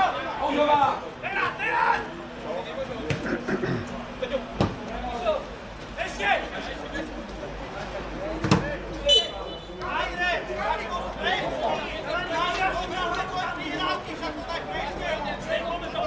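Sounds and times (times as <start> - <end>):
voices talking and calling out: 0.0 - 16.0
referee's whistle: 9.1 - 9.8.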